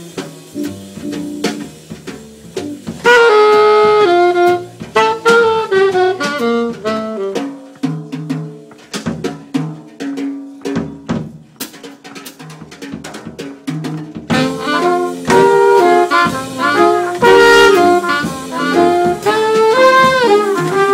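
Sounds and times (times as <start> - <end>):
drum hits: 0.0 - 20.9
alto saxophone phrase: 2.9 - 7.7, 14.3 - 20.9
horns playing loudly: 3.0 - 7.5, 14.3 - 20.9.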